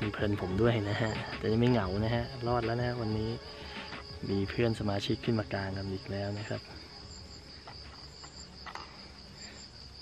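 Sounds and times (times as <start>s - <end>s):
night insects chirring: 0.0s - 10.0s.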